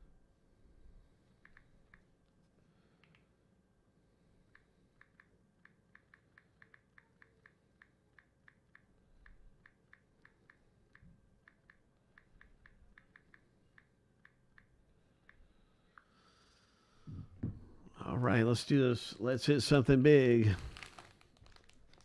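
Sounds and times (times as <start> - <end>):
faint light clicks: 1.4 - 3.3.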